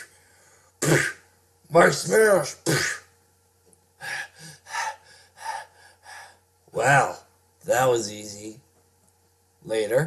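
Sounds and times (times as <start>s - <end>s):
person panting hard: 4.0s - 6.4s.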